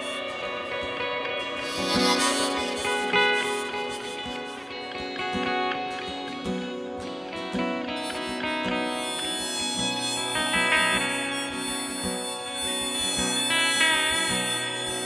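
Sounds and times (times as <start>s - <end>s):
electric guitar: 0.0s - 15.0s
harmonica melody: 0.0s - 15.0s
strummed acoustic guitar: 0.0s - 15.0s.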